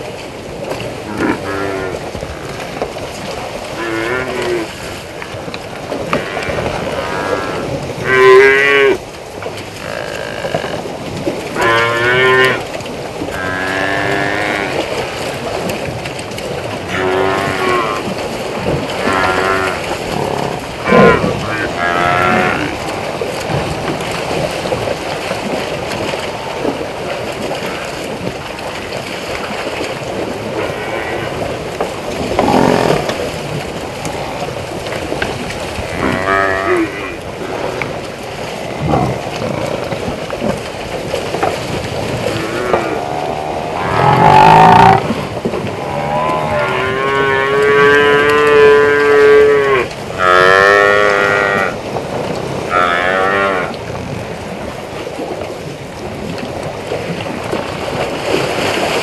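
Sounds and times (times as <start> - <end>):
buffalo lowing: 42.2 - 51.8.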